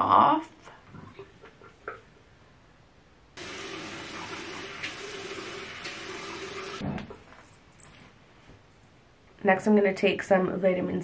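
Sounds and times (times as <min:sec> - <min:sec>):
sink tap running: 0:03.4 - 0:06.8.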